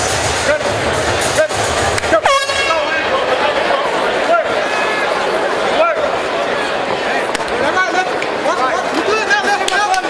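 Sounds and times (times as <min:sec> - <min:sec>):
crowd shouting: 0:00.1 - 0:10.0
air horn blast: 0:02.2 - 0:03.2.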